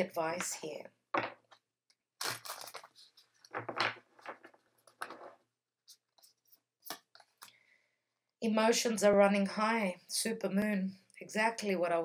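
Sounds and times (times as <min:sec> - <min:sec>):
cards being shuffled: 0:02.2 - 0:07.5.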